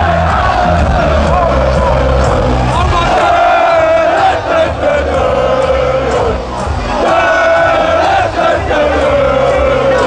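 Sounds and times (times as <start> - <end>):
crowd shouting and chanting: 0.0 - 10.0
music beat pulsing: 0.0 - 10.0.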